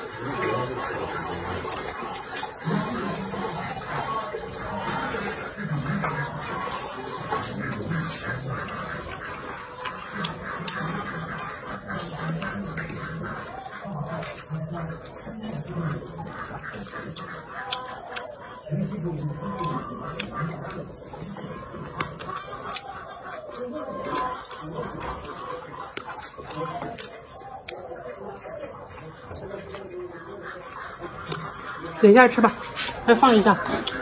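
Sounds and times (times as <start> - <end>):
chewing and lip-smacking: 0.0 - 34.0
poultry clucking: 0.0 - 34.0
wet clicks of mouth: 1.6 - 2.8.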